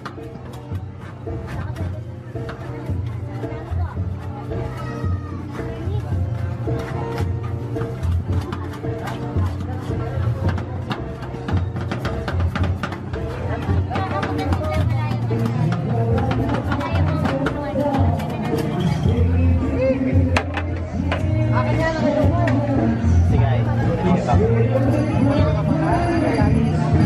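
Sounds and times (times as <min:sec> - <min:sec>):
background music with bass line: 0:00.0 - 0:27.0.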